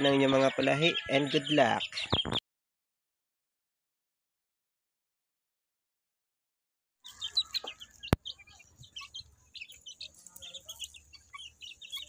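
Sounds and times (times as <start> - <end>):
chicks peeping: 0.0 - 2.4, 7.0 - 12.0.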